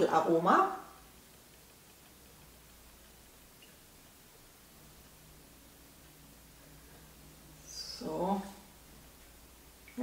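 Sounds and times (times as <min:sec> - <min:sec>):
faint tick: 0:01.2 - 0:04.2.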